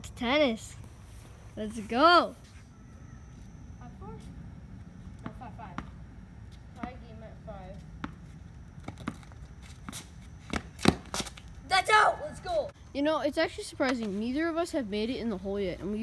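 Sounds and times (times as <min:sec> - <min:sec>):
tennis ball bouncing on concrete: 0:04.8 - 0:11.5.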